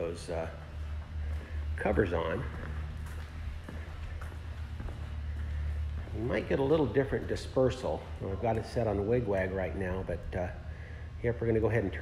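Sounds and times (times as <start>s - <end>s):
footsteps on concrete floor: 0.0s - 8.9s
steady low hum: 0.0s - 12.0s.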